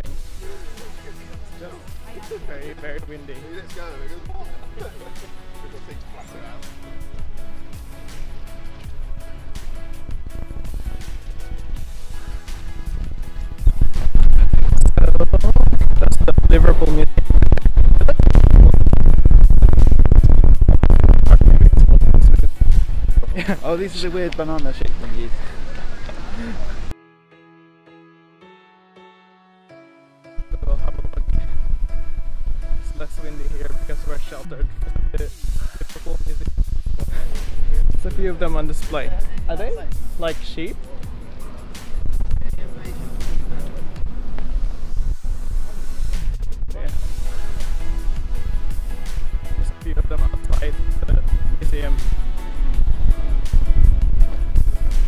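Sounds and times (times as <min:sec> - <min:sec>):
music playing: 0:00.0 - 0:55.0
wind buffeting microphone: 0:08.8 - 0:26.9, 0:30.4 - 0:55.0.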